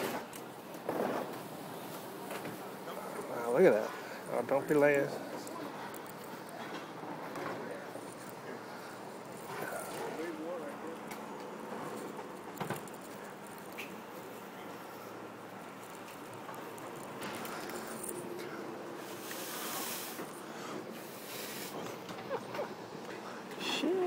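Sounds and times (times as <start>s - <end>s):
street background noise: 0.0s - 24.0s
faint distant voices: 2.4s - 24.0s.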